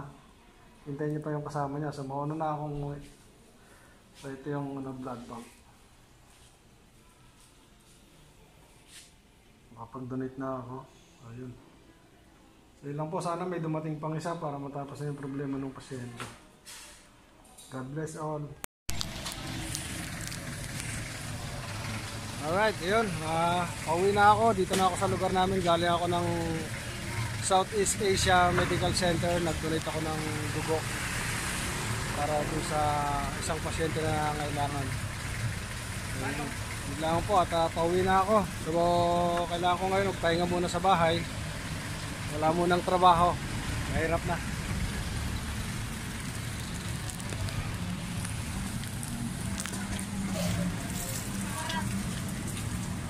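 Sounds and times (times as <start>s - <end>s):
street noise: 0.0s - 10.2s, 18.9s - 53.0s
vehicle engine running: 18.9s - 53.0s.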